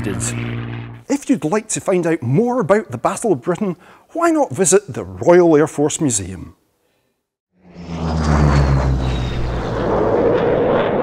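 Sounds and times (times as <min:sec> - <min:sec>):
rushing noise of aircraft passing: 0:00.0 - 0:01.0, 0:07.6 - 0:11.0
propeller aircraft engine drone: 0:00.0 - 0:01.1, 0:07.6 - 0:11.0.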